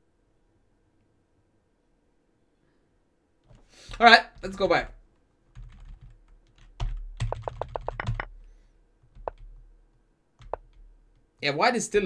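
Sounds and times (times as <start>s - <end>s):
computer keyboard clicks: 5.5s - 8.3s, 9.1s - 9.6s, 10.4s - 11.3s.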